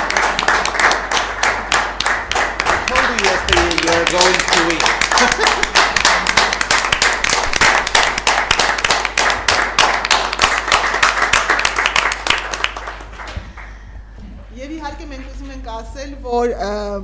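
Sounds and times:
group applauding: 0.0 - 13.8.

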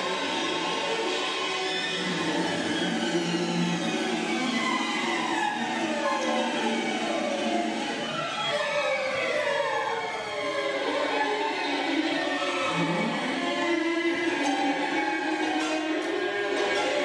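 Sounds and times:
choir-like wail: 0.0 - 17.0.

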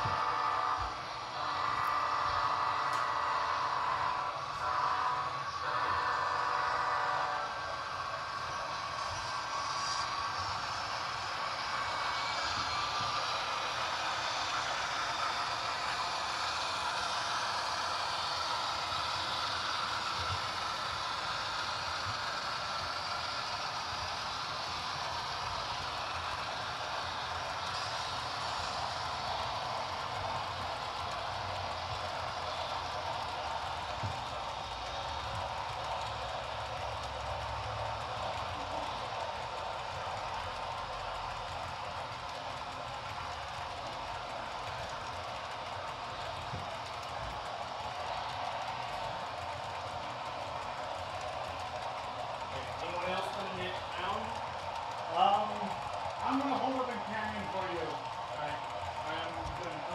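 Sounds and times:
model train wheels rattling: 0.0 - 59.9.

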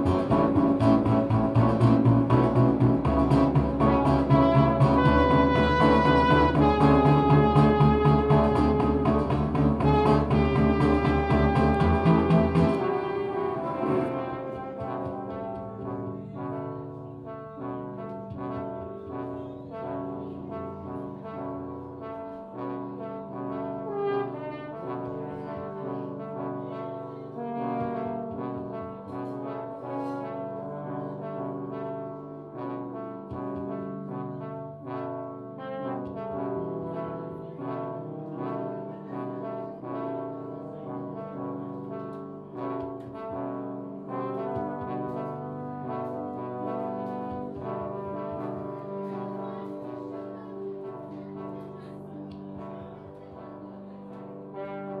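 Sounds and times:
valve trombone improvising: 0.0 - 51.8.

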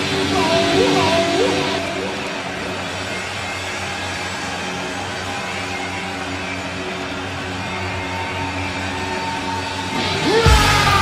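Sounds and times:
electronic drone music: 0.0 - 11.0.

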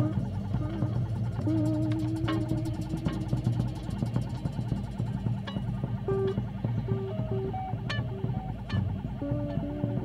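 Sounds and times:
low rumbling bass drone: 0.0 - 10.0
rapid even drum ticking: 0.0 - 10.0.

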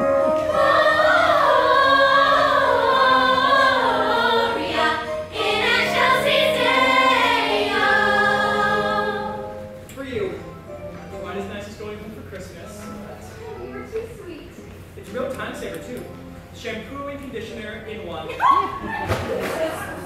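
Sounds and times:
musical accompaniment with bass: 0.0 - 11.5
young female chorus singing: 0.3 - 9.7.

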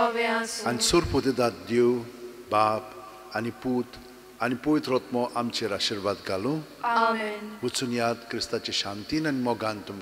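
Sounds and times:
man speaking into a microphone: 0.6 - 6.8, 7.6 - 10.0.

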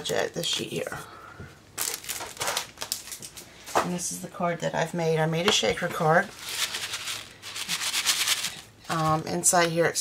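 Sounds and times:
sequins rattling in shaker card: 6.3 - 9.2.

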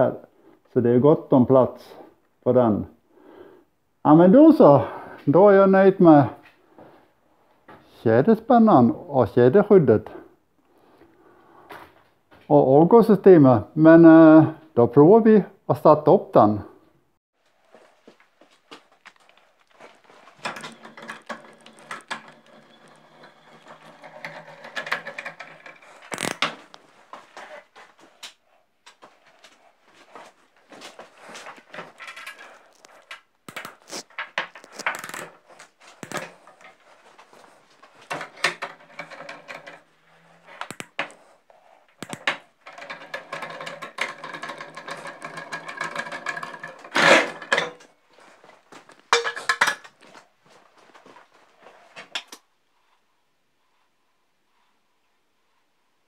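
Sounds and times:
metal parts and tools clattering: 19.8 - 26.8, 31.3 - 41.1, 42.0 - 48.0, 48.9 - 50.1.

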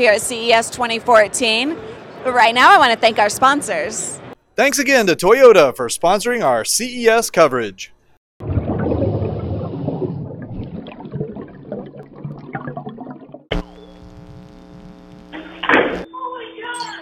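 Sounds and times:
splashing bubbling water: 8.4 - 13.6.

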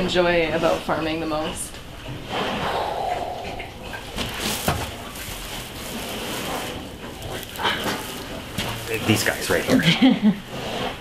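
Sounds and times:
pigs grunting: 2.2 - 5.2, 6.0 - 11.0
rustling: 3.9 - 9.8.

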